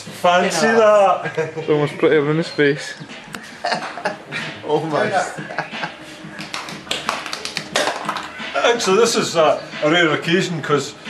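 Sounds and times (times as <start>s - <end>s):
sharp taps and clicks: 6.4s - 8.4s.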